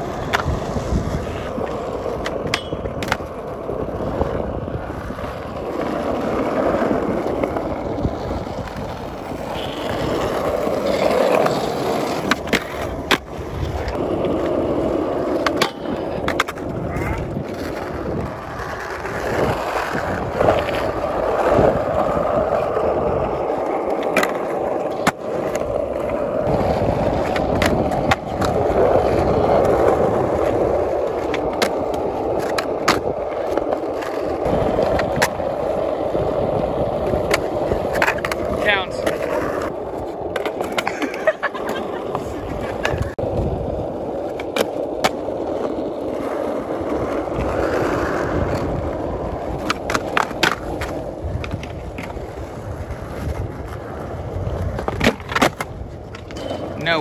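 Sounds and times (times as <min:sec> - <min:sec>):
skateboard grinding on ledge and rail: 0:00.0 - 0:57.0
skateboards rolling on concrete: 0:00.0 - 0:57.0
skateboard tail pops and landings: 0:00.1 - 0:01.2, 0:02.1 - 0:03.5, 0:23.9 - 0:25.7, 0:26.4 - 0:30.5, 0:54.5 - 0:56.6.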